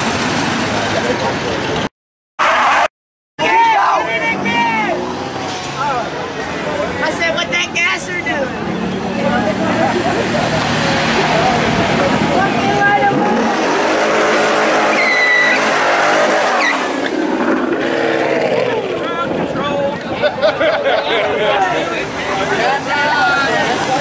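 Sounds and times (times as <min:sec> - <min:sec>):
tyres squealing on asphalt: 0:02.4 - 0:19.6
car engine revving high: 0:04.1 - 0:07.0, 0:08.6 - 0:19.5.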